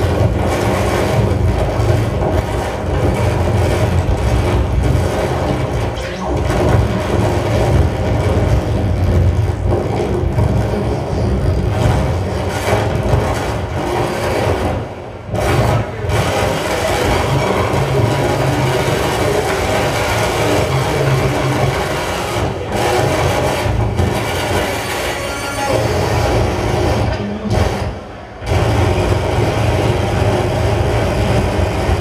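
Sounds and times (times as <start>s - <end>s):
grinding electronic noise music: 0.0s - 32.0s.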